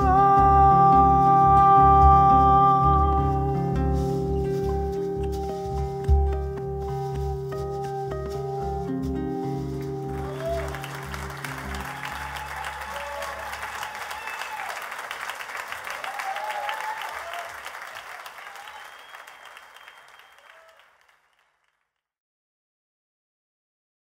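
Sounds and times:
audience applause: 0:10.0 - 0:21.8
audience shouts: 0:10.2 - 0:15.2, 0:15.8 - 0:20.9.

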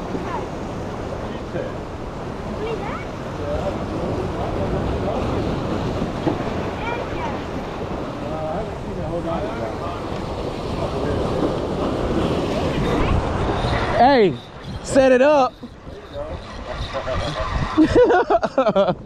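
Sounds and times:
faint voices: 0:00.0 - 0:17.8
surf washing against rocks: 0:00.0 - 0:19.0
wind buffeting microphone: 0:00.0 - 0:19.0.

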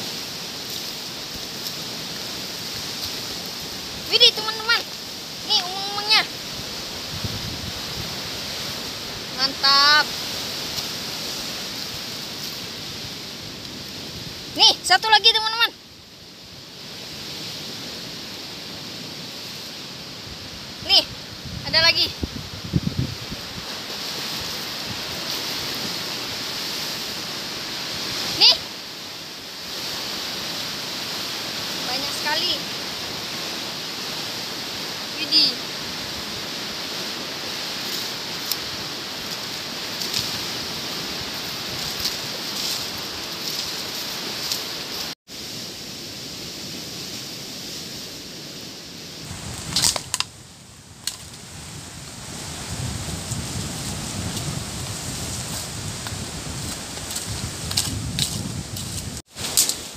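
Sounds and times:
outdoor background hiss: 0:00.0 - 0:59.9.

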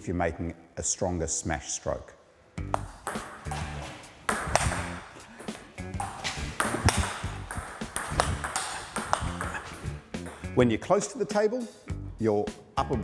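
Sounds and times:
background music: 0:02.5 - 0:13.0
table tennis ball knocks: 0:02.7 - 0:10.4.

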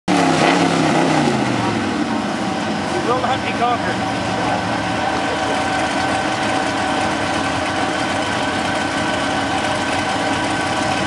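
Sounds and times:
truck engine running: 0:00.1 - 0:11.0.

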